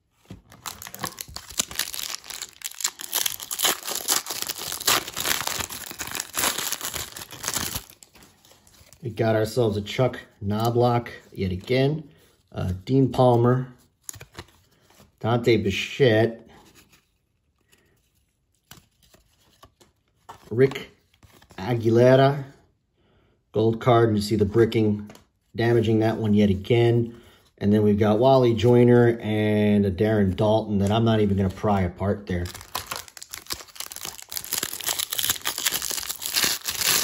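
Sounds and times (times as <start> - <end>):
foil wrapper tearing and crinkling: 0.5 - 8.8, 32.4 - 37.0.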